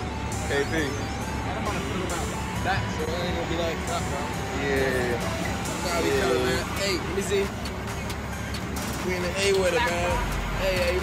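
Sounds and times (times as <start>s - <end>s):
background music: 0.0s - 11.0s
man speaking: 0.4s - 7.6s.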